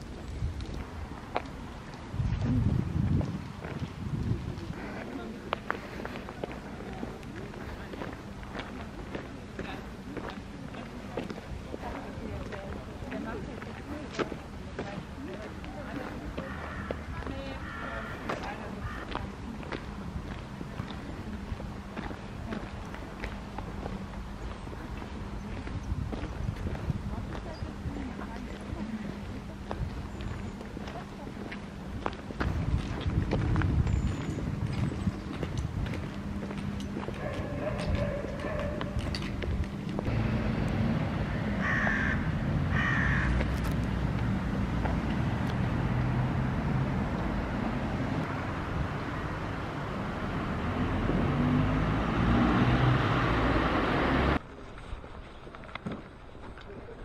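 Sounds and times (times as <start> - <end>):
footsteps: 0.0 - 40.2
low traffic rumble: 0.0 - 57.0.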